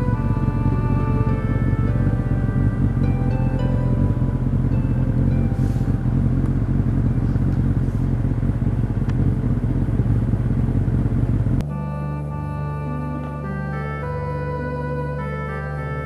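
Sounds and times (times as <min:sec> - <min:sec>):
organ music: 0:00.0 - 0:08.0, 0:11.6 - 0:16.0
faint background music notes: 0:00.0 - 0:08.1, 0:11.6 - 0:16.0
steady low rumble: 0:00.0 - 0:16.0.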